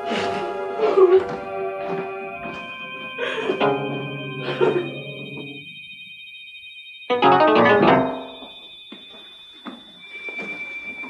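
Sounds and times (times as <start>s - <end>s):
keyboard chord sting: 3.6s - 5.6s, 7.1s - 8.3s.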